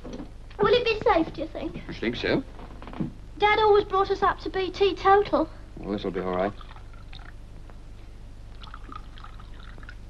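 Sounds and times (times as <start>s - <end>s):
steady low hum: 0.0s - 10.0s
wine pouring into glass: 8.6s - 10.0s.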